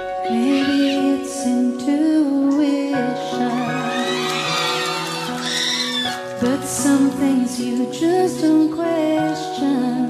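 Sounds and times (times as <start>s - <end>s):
soft instrumental backing: 0.0s - 10.0s
woman singing pop ballad: 0.2s - 4.5s, 6.3s - 10.0s.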